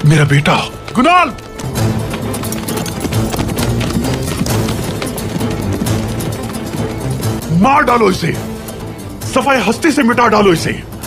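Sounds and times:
horse hooves clopping: 0:00.0 - 0:09.1.

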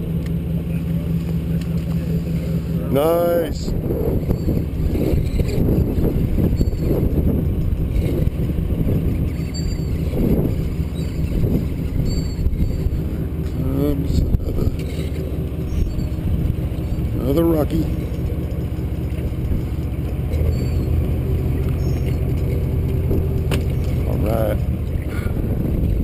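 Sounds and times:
boat engine humming: 0:00.0 - 0:26.0
water noise: 0:01.1 - 0:26.0
wind noise: 0:03.4 - 0:13.3, 0:22.9 - 0:26.0.

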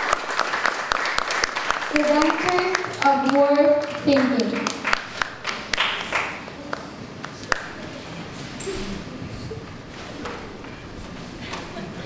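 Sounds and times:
scattered handclaps: 0:00.0 - 0:07.8.

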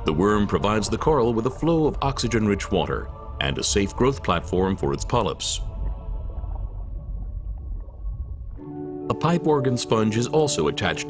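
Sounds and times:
deep rumbling drone: 0:00.0 - 0:09.1.

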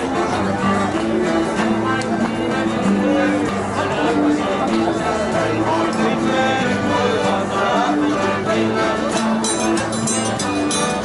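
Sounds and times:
button accordion chords: 0:00.0 - 0:11.0
plucked string instrument: 0:00.0 - 0:11.0
strummed acoustic guitars: 0:00.0 - 0:11.0.

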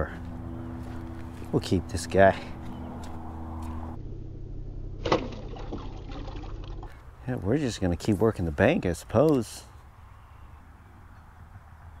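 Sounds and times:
water splashing and sloshing: 0:05.0 - 0:07.2.

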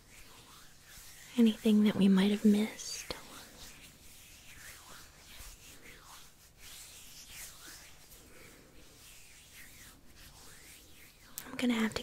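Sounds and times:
soft swishes of hands: 0:00.0 - 0:12.0.

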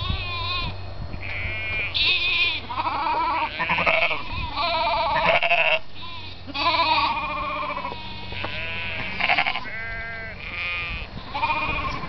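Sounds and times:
sheep bleating: 0:00.0 - 0:12.0.

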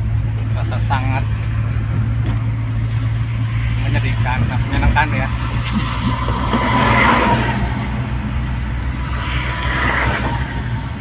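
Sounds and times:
car interior highway drone: 0:00.0 - 0:11.0.

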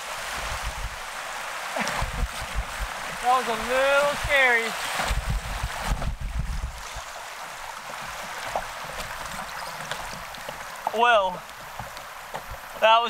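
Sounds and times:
river water rushing and splashing: 0:00.0 - 0:13.0.

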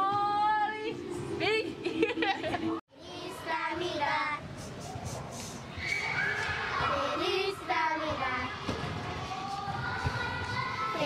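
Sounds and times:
children singing held notes: 0:03.0 - 0:11.0.

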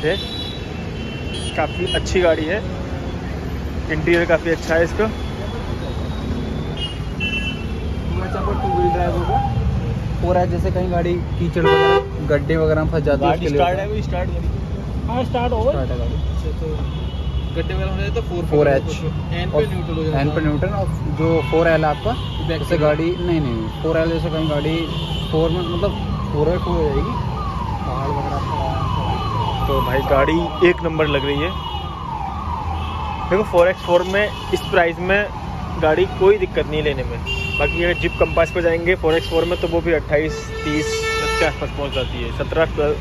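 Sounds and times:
low rumble of vehicles: 0:00.0 - 0:43.0
car horn toot: 0:06.7 - 0:07.7, 0:11.6 - 0:12.2, 0:37.2 - 0:42.1
voices: 0:08.0 - 0:31.8
electronic siren falling tone: 0:25.9 - 0:29.9.

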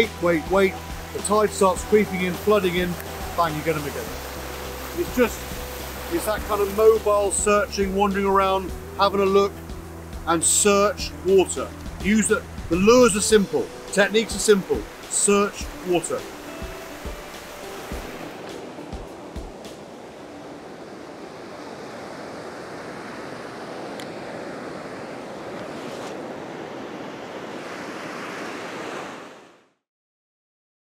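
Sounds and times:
sea surf breaking in shallows: 0:00.0 - 0:29.6.

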